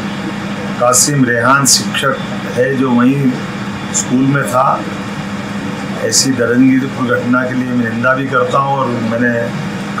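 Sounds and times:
man speaking: 0.6 - 5.0, 6.0 - 9.8.

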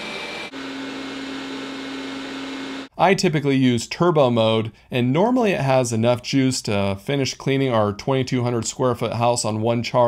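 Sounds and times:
robot vacuum high whine: 0.0 - 2.9
robot vacuum lower hum: 0.0 - 2.9.

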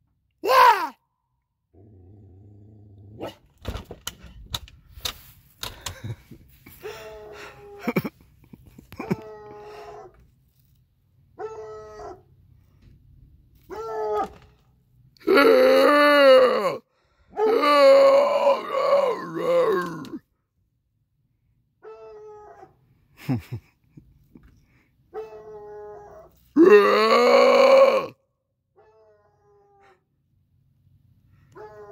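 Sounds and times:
loud drawn-out cry: 0.4 - 1.0, 15.2 - 20.2, 26.6 - 28.2
dog howling barks: 11.4 - 12.3, 31.5 - 31.9.

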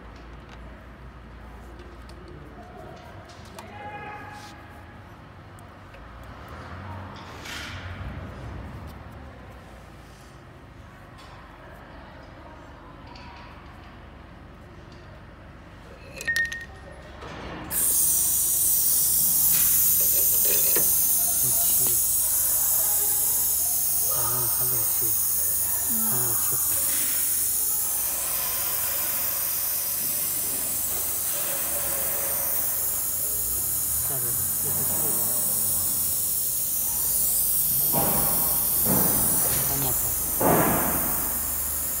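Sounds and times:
compressed air hissing: 17.7 - 42.0.

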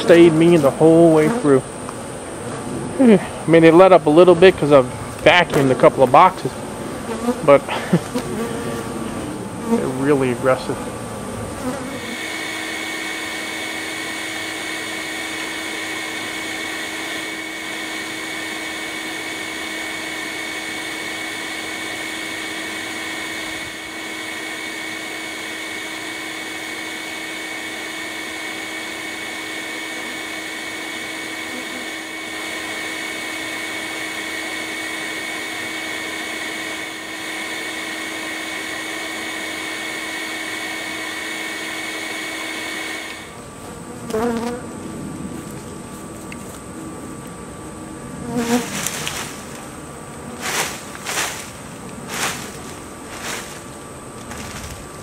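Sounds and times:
vacuum motor whine: 6.1 - 55.0.

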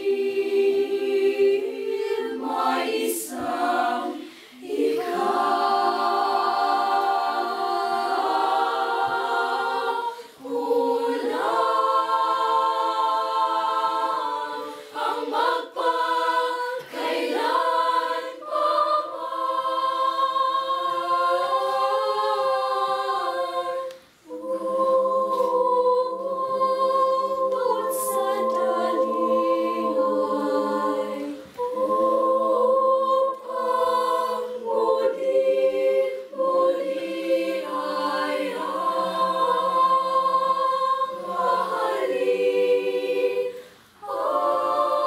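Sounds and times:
children's choir singing: 0.0 - 45.0.

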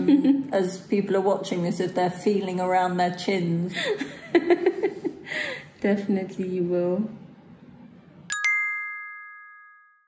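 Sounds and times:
bright chime: 8.3 - 10.0.

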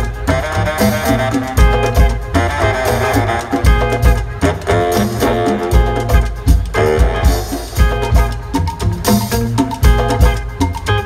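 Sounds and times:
band playing instrumental groove: 0.0 - 11.0
deep bass notes: 0.0 - 11.0.

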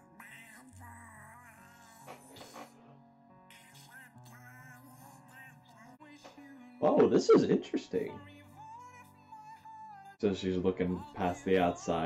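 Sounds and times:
man singing with music: 0.0 - 12.0.

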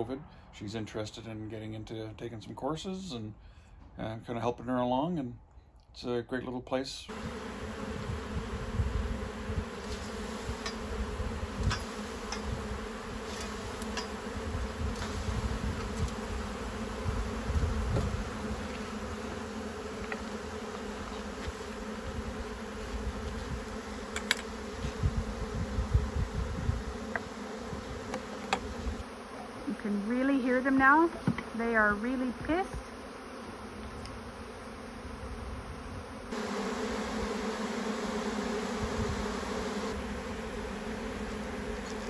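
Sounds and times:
bee swarm buzzing: 7.1 - 42.0.

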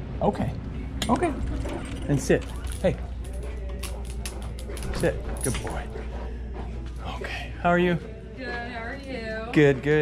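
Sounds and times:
dog collar chain jingling: 1.4 - 5.9.

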